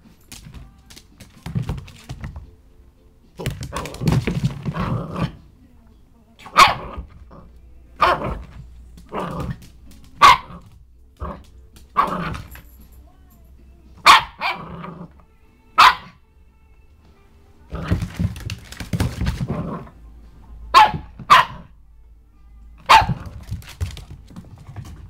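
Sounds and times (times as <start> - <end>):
puppy barking: 6.4 - 7.1, 8.0 - 9.5, 10.2 - 11.4, 12.0 - 12.5, 14.0 - 14.8, 15.8 - 16.2, 20.7 - 21.8, 22.8 - 23.4.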